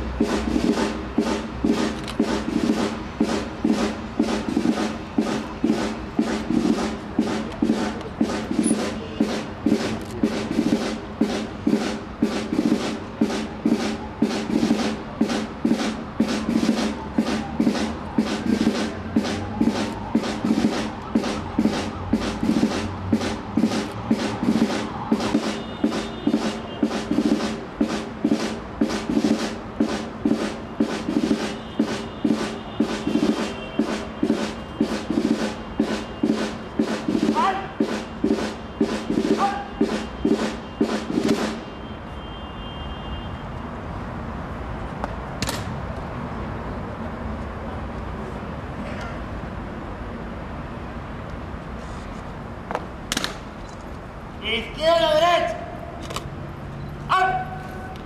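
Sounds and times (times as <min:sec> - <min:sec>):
military drum marching cadence: 0:00.0 - 0:41.9, 0:54.4 - 0:56.2, 0:57.0 - 0:57.9
steady background noise: 0:00.0 - 0:58.0.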